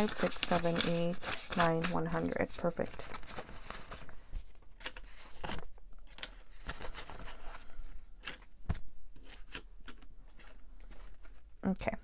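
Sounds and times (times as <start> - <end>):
paper money rustling: 0.0 - 4.1.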